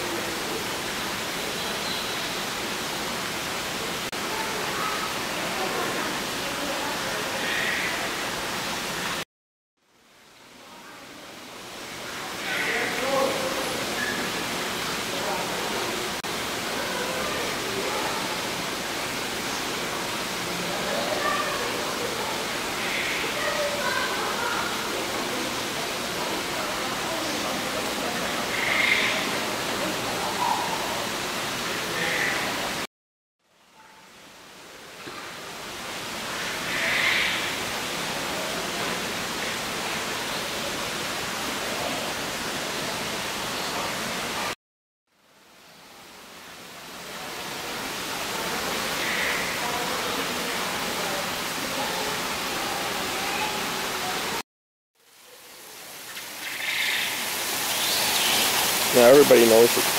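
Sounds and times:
indoor waterfall rushing hiss: 0.0 - 9.2, 9.9 - 32.9, 33.6 - 44.6, 45.2 - 54.4, 55.0 - 59.9.

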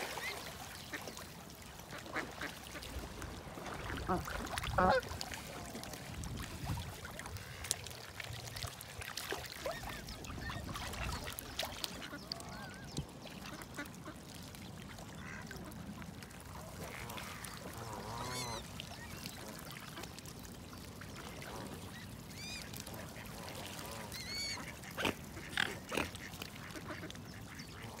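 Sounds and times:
ducks quacking: 3.9 - 5.1, 15.2 - 15.8, 16.8 - 18.6, 22.4 - 28.0.

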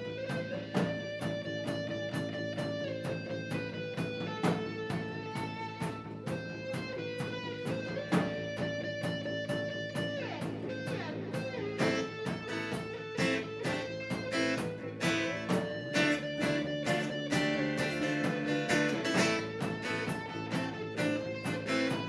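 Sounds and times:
lead guitar bending notes: 0.0 - 22.0
live band playing: 0.0 - 22.0.

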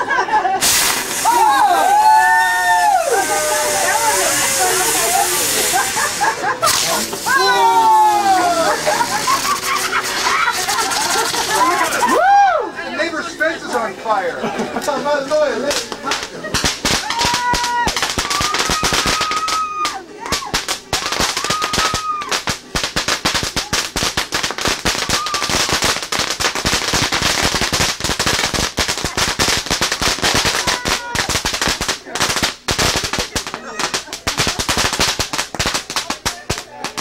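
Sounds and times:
firecrackers popping: 0.6 - 12.4, 15.2 - 37.0.

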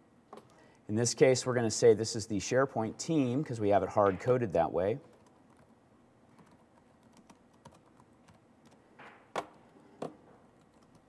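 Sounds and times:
faint keyboard typing: 5.0 - 11.0.

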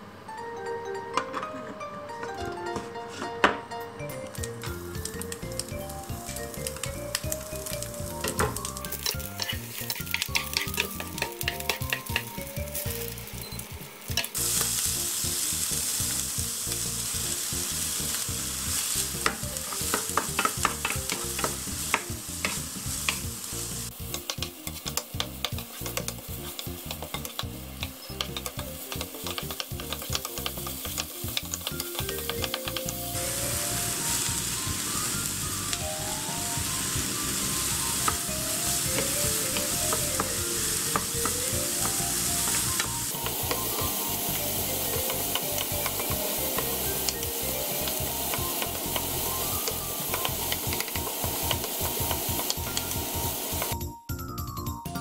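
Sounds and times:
soft tune: 0.0 - 55.0
garlic and onion sizzling in oil: 4.3 - 53.8
spatula scraping a pan: 8.6 - 12.3, 23.8 - 34.2.

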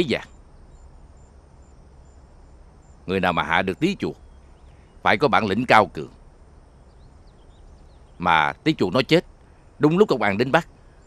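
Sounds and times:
insect chirping: 0.0 - 11.0
low background hum: 0.0 - 11.0.

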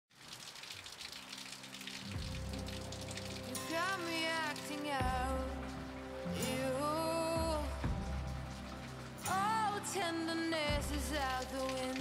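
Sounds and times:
steady rain falling: 0.1 - 12.0
background music with bass: 2.1 - 12.0
person singing: 3.5 - 8.3, 9.2 - 12.0.

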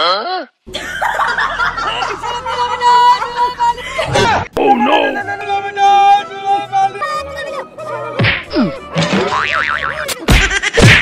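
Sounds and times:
hard cartoon whacks: 8.2 - 9.3, 10.3 - 11.0.

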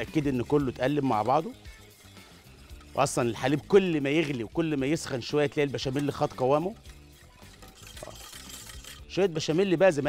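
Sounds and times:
quiet background music: 0.0 - 10.0
whisking sauce in a saucepan: 0.0 - 10.0.

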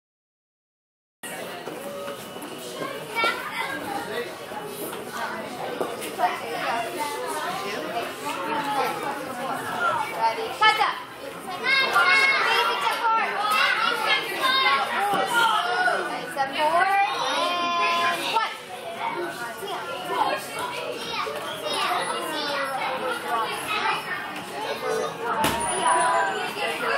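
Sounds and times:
children talking and calling out: 1.3 - 26.9.

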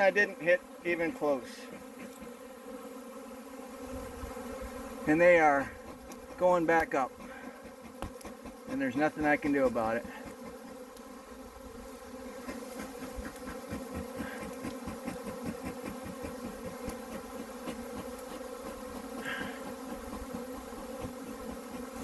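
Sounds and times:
bee swarm humming: 0.0 - 22.0.

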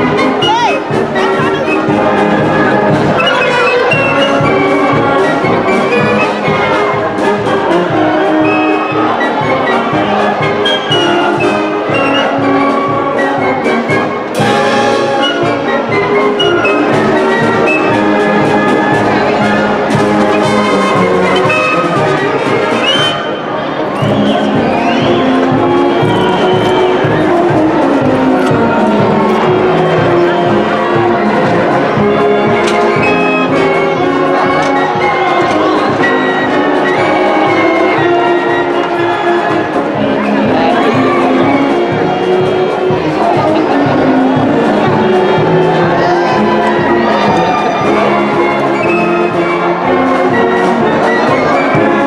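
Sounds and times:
concert band playing a march: 0.0 - 52.0.

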